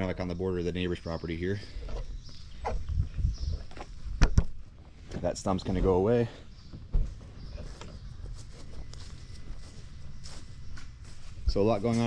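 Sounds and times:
footsteps on mulch and grass: 4.9s - 12.0s
dull thump: 6.7s - 7.3s.

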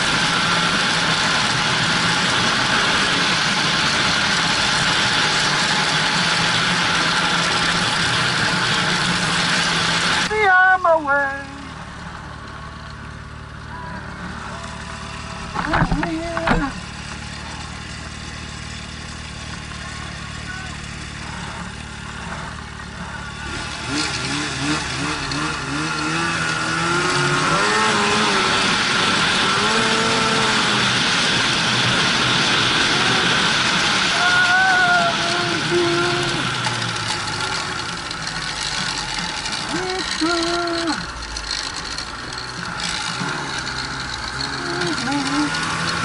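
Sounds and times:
snowmobile engines idling and revving: 0.0s - 46.0s.

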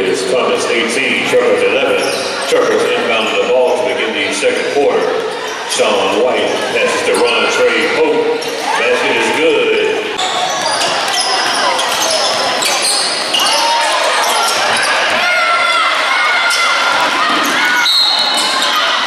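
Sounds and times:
indistinct crowd voices: 0.0s - 19.0s
sneakers squeaking: 1.1s - 19.0s.

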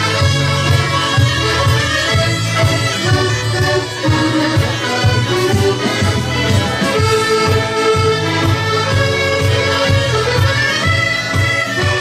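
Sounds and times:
bagpipe: 0.0s - 12.0s
button accordions playing folk tune: 0.0s - 12.0s.

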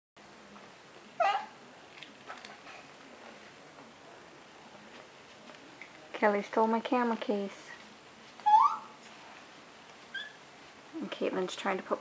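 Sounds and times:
faint room noise: 0.2s - 12.0s
baby squealing: 8.5s - 8.9s, 10.2s - 10.4s.

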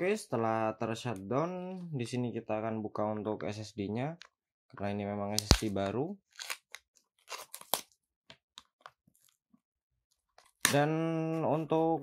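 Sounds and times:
plastic packaging crinkling: 5.3s - 8.0s
paper tearing: 6.4s - 7.9s.

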